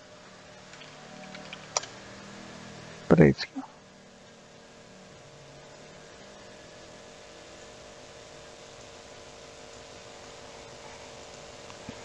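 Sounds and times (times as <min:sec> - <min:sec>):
faint steady hiss: 0:00.0 - 0:12.0
low electrical hum: 0:00.0 - 0:12.0.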